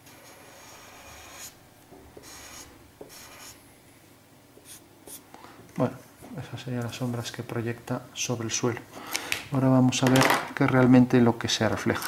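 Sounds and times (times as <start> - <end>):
marker scratching on paper: 0.1 - 1.6, 2.2 - 3.6, 4.6 - 5.2.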